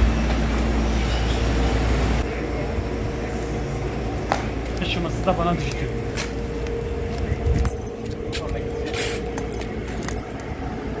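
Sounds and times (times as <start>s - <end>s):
steady low hum: 0.0s - 11.0s
street noise rumble: 0.0s - 11.0s.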